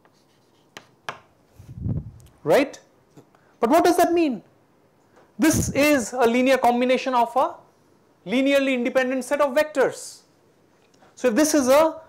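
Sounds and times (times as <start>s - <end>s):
chalk writing on chalkboard: 0.0s - 1.2s.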